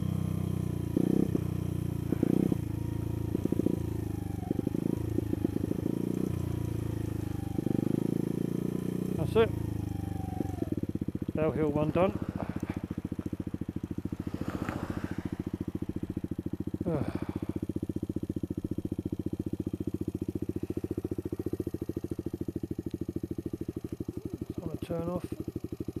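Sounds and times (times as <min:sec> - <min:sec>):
motorcycle engine idling: 0:00.0 - 0:26.0.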